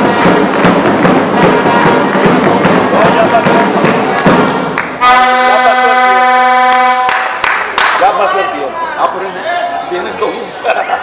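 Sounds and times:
people shouting: 0:00.0 - 0:06.2
horn long steady note: 0:05.0 - 0:07.2.

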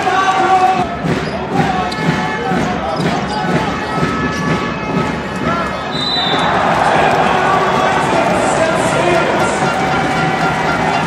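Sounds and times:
arena hall noise: 0:00.0 - 0:11.0
unclear voices: 0:00.0 - 0:11.0.

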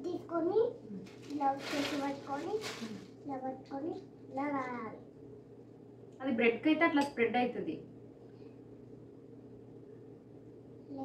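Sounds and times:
child talking: 0:00.0 - 0:05.1
plastic bag crinkling: 0:01.1 - 0:03.2
woman talking: 0:06.2 - 0:07.9.

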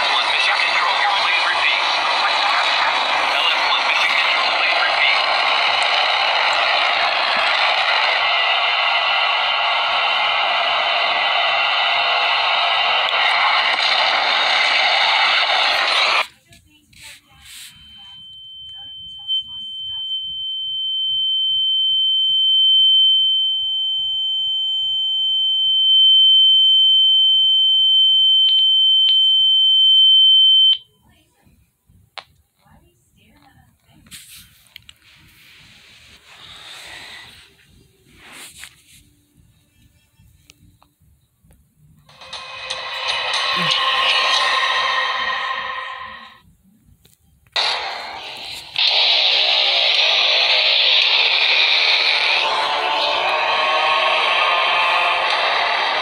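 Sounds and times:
burst of noise: 0:00.0 - 0:16.3, 0:47.6 - 0:56.0
film score music: 0:42.1 - 0:46.3
high-pitched electronic tone: 0:42.1 - 0:46.4, 0:47.6 - 0:56.0.

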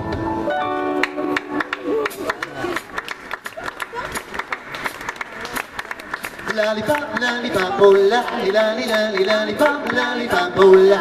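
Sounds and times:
audience voices: 0:00.7 - 0:11.0
hand clapping: 0:01.0 - 0:11.0
band singing and playing: 0:06.4 - 0:11.0.

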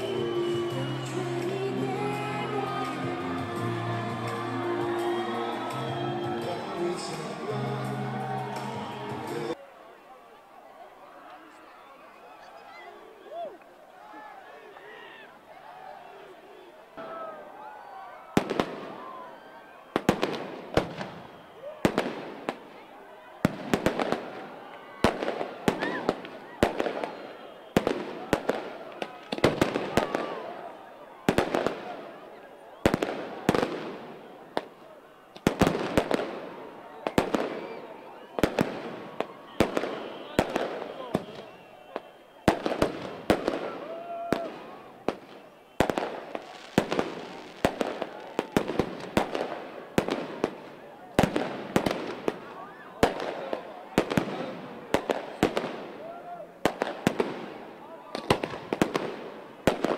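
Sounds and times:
crowd voices: 0:00.0 - 0:59.9
fireworks bangs crackling: 0:18.4 - 0:19.1, 0:19.9 - 0:22.8, 0:23.4 - 0:30.3, 0:31.3 - 0:32.0, 0:32.8 - 0:56.0, 0:56.6 - 0:59.9.

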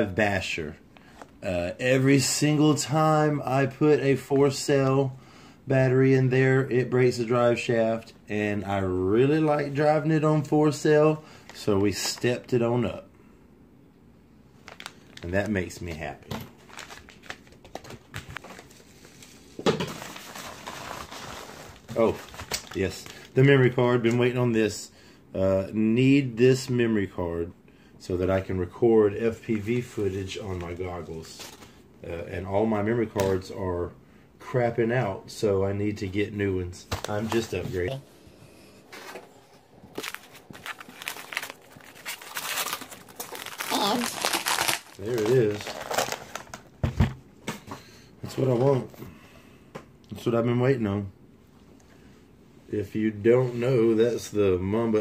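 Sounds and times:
envelope crinkling rustle: 0:14.6 - 0:23.4, 0:38.9 - 0:46.8.

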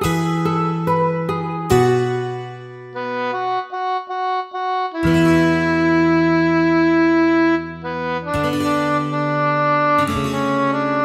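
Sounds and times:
instrumental music: 0:00.0 - 0:11.0.

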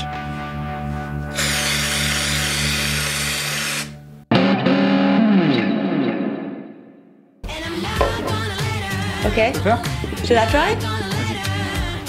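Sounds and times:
background music: 0:00.0 - 0:12.0
distorted electric guitar music: 0:04.3 - 0:07.1.

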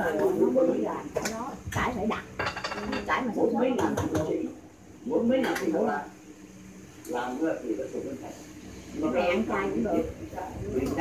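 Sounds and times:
people talking: 0:00.0 - 0:06.1, 0:09.0 - 0:11.0
bowls clinking on tiled floor: 0:02.4 - 0:03.1.

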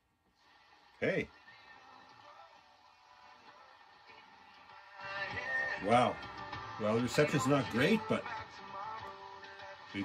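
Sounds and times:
music from radio speaker: 0:00.0 - 0:10.0.

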